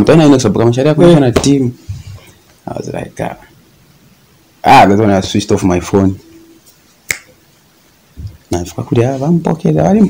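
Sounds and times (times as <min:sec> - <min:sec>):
man talking: 0:00.0 - 0:01.9, 0:02.6 - 0:03.5, 0:04.6 - 0:06.3, 0:08.2 - 0:10.0
finger snap: 0:07.0 - 0:07.4.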